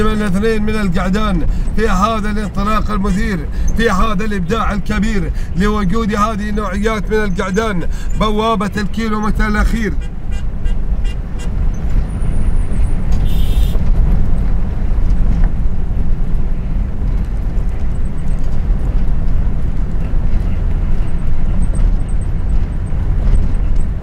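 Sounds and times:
vehicle rumble driving fast: 0.0 - 24.0
wind noise on microphone: 9.9 - 24.0.

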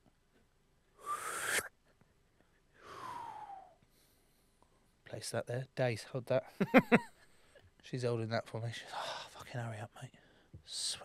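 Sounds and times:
man making whistling mouth noises: 1.0 - 1.8, 2.8 - 3.8.

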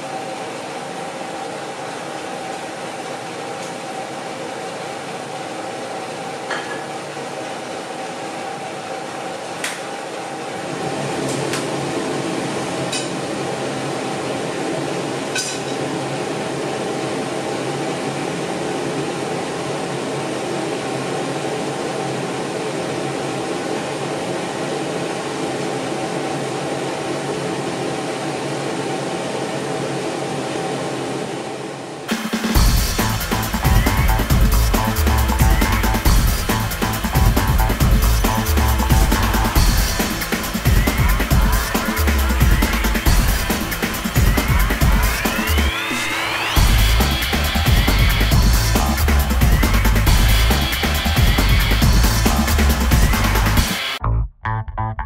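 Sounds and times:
range hood fan humming: 0.0 - 54.0
glass and dishes clinking: 6.5 - 6.9, 15.4 - 15.8.

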